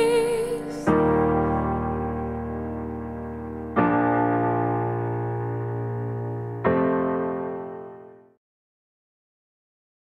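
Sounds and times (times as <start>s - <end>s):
piano chord ringing: 0.0s - 8.4s.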